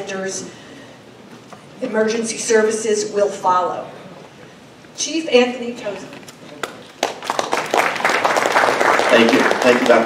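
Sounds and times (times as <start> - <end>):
audience applauding: 6.6 - 10.0.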